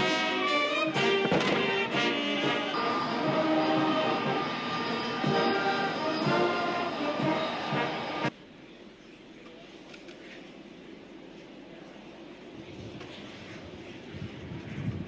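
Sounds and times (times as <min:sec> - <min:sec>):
brass band playing: 0:00.0 - 0:08.3
low steady background noise: 0:07.2 - 0:15.0.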